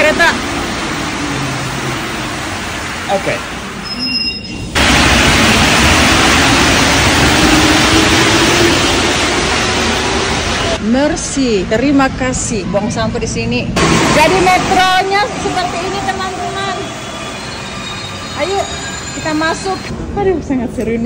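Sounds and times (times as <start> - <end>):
subway train running: 0.0 - 12.0, 13.6 - 20.5.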